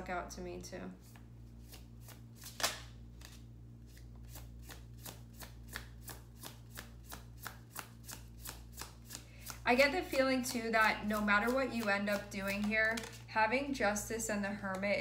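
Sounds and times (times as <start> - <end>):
cards being shuffled: 1.0 - 13.3.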